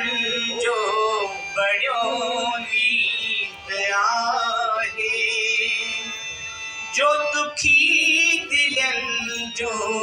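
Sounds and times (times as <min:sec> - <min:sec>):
person singing devotional song: 0:00.0 - 0:06.0
musical accompaniment: 0:00.0 - 0:10.0.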